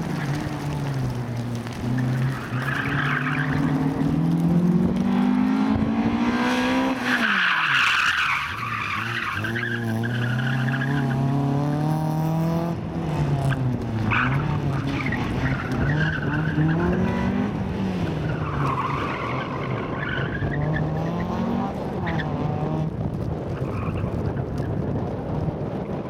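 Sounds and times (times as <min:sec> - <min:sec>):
car engine revving: 0:00.0 - 0:19.4.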